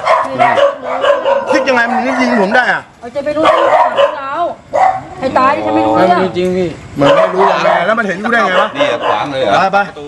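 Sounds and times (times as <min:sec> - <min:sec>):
men talking: 0:00.0 - 0:03.0, 0:05.4 - 0:10.0
dog barking: 0:00.0 - 0:05.2, 0:07.0 - 0:09.6.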